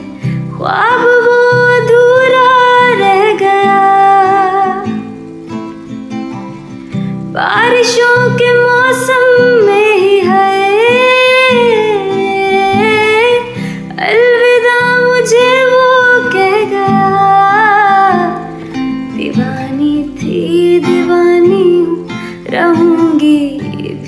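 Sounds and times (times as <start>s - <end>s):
strummed acoustic guitar: 0.0s - 24.0s.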